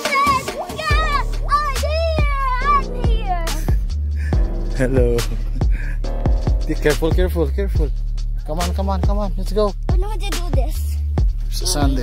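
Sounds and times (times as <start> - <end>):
drum hits: 0.0 - 9.2
beat-driven music track: 0.0 - 12.0
deep steady bass: 0.9 - 12.0.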